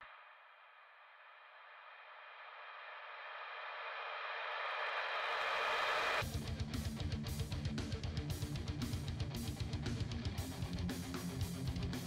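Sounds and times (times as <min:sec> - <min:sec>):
electric guitar rock music: 0:06.2 - 0:12.0.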